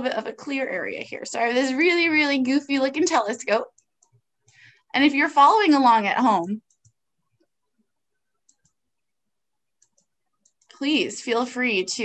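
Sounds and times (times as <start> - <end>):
computer mouse clicks: 3.6 - 4.9, 6.2 - 9.0, 9.7 - 11.0.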